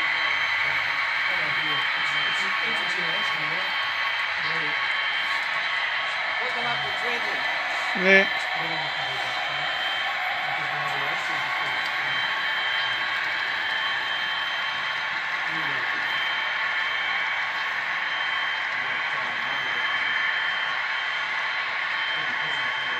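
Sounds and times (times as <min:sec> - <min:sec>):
faint voices talking: 0:00.0 - 0:22.9.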